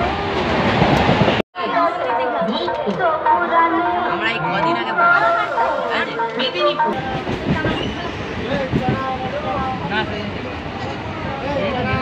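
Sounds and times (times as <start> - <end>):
train rumbling on rails: 0.0 - 1.4, 5.0 - 12.0
people talking: 1.6 - 12.0.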